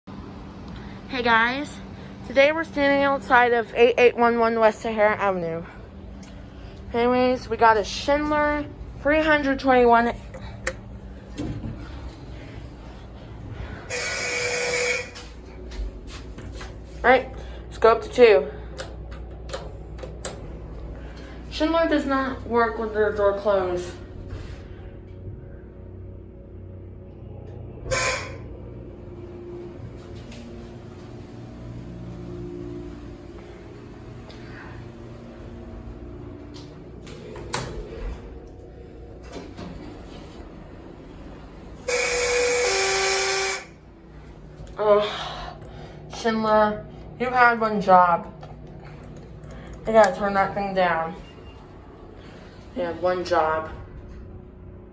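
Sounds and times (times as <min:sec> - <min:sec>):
low hum: 0:00.0 - 0:54.9
elevator whine: 0:00.1 - 0:54.9
elevator two-tone arrival signal: 0:13.6 - 0:15.6, 0:26.9 - 0:36.5, 0:41.1 - 0:43.8, 0:51.0 - 0:52.4.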